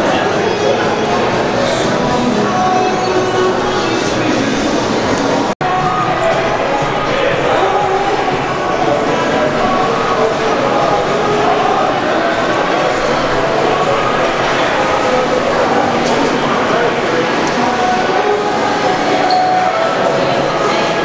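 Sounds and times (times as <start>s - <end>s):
babble of many voices: 0.0s - 21.0s.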